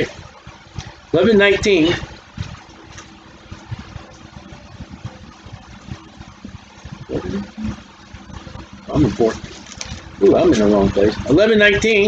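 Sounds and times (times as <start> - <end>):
faint steady hum: 0.0 - 12.0
low irregular rumbling: 0.0 - 12.0.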